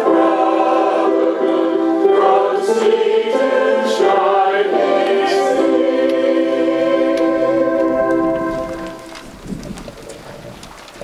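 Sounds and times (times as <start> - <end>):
choir singing a chord: 0.0 - 9.0
low background noise: 0.0 - 11.0.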